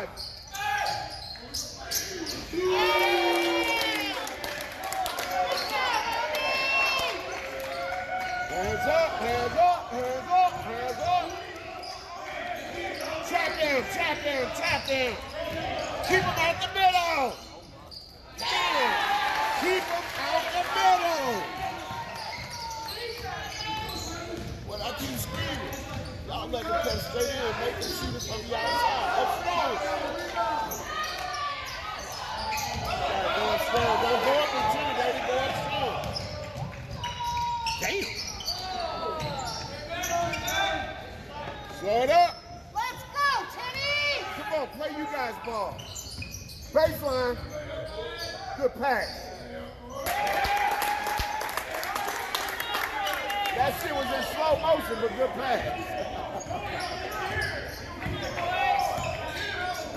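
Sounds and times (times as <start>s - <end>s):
shouts and chatter: 0.0s - 17.4s, 18.2s - 25.9s, 26.5s - 45.7s, 46.7s - 59.9s.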